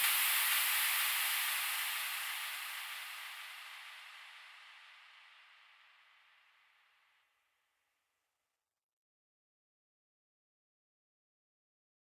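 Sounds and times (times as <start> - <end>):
synthesized white noise hiss: 0.0 - 6.6.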